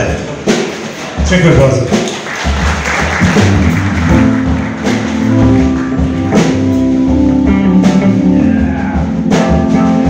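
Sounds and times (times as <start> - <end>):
band playing jazz-rock: 0.0 - 10.0
low bass notes: 3.0 - 10.0.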